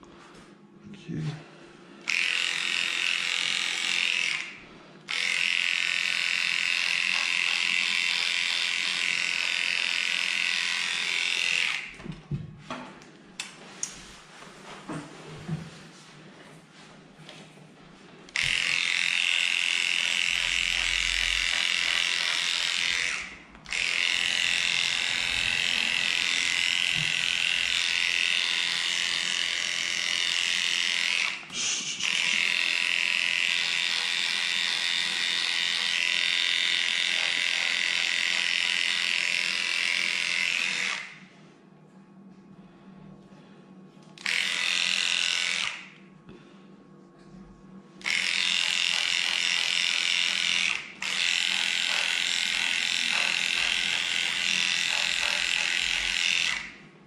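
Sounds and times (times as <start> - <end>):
electric clipper whining: 2.0 - 12.2, 18.3 - 41.2, 44.2 - 46.0, 48.0 - 56.8.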